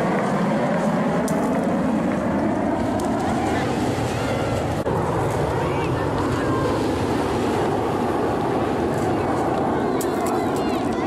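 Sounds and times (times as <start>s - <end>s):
jet engines roaring: 0.0s - 11.0s.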